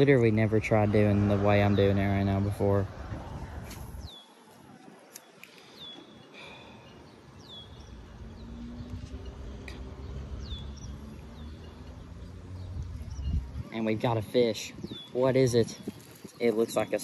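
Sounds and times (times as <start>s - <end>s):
low rumble on microphone: 8.1s - 13.7s.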